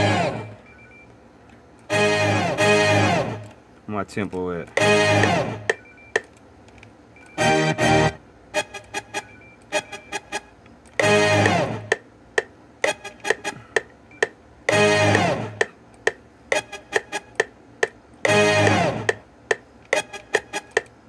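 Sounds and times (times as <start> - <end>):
pitched chord chop: 0.0 - 0.6, 1.9 - 3.5, 4.8 - 5.8, 7.4 - 12.0, 14.7 - 15.7, 18.2 - 19.2.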